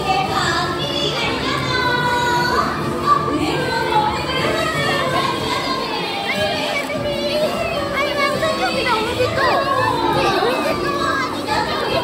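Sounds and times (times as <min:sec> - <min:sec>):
children and audience voices: 0:00.0 - 0:12.0
music playing: 0:00.0 - 0:12.0.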